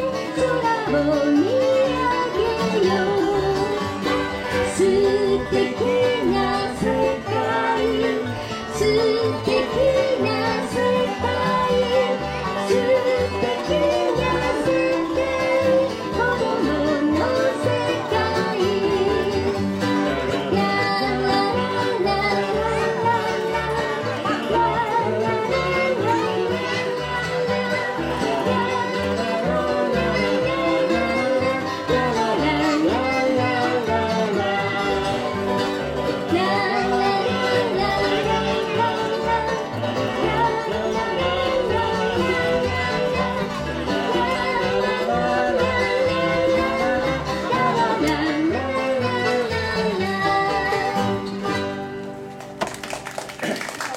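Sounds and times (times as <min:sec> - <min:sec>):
voices singing: 0:00.0 - 0:52.0
banjo: 0:00.0 - 0:53.9
bluegrass band playing: 0:00.0 - 0:53.9
fiddle: 0:00.0 - 0:53.9.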